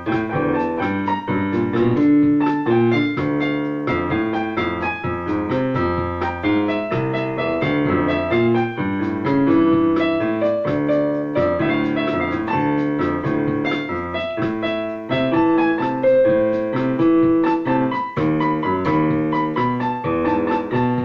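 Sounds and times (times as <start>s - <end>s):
electronic keyboard bossa nova: 0.0s - 21.0s.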